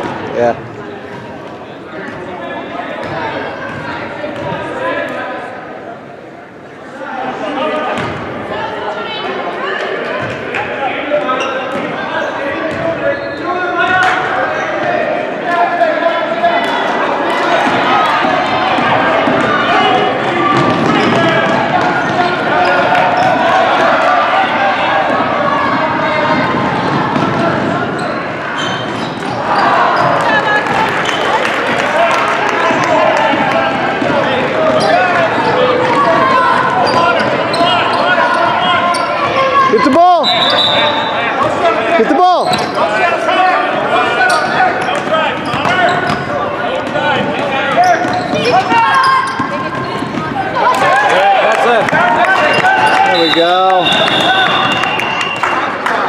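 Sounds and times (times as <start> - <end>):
chatter and calls of people: 0.0 - 56.0.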